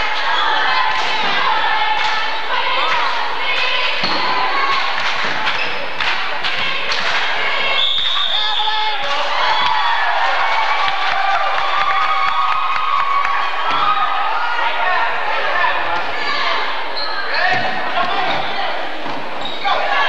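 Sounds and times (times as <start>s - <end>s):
crowd voices: 0.0s - 20.0s
referee's whistle: 7.7s - 9.0s.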